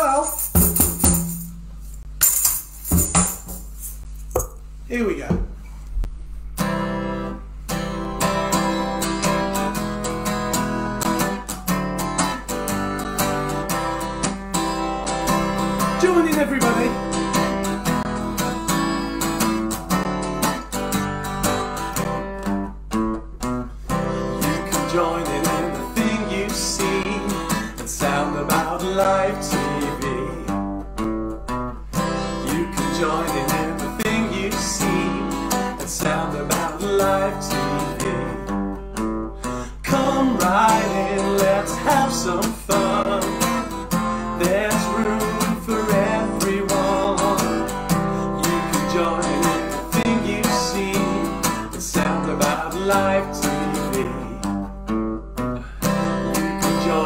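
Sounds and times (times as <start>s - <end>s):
acoustic guitar strumming: 0.0s - 4.7s, 6.5s - 57.0s
man singing: 15.8s - 17.2s, 24.2s - 30.7s, 32.3s - 38.6s, 39.7s - 54.7s, 56.3s - 57.0s.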